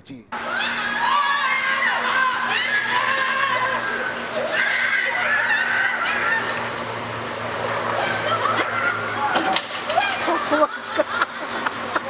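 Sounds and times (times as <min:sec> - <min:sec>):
loud held cries: 0:00.4 - 0:12.0.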